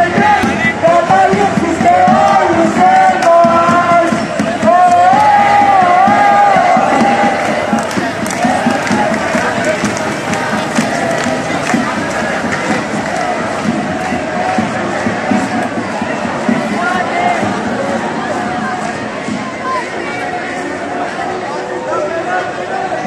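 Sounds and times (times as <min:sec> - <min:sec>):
crowd talking and shouting: 0:00.0 - 0:23.0
marchers chanting: 0:00.0 - 0:23.0.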